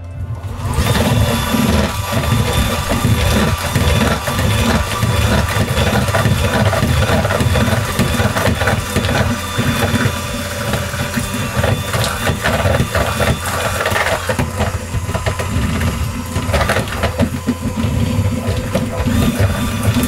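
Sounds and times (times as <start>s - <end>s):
electric hand mixer running: 0.0s - 20.0s.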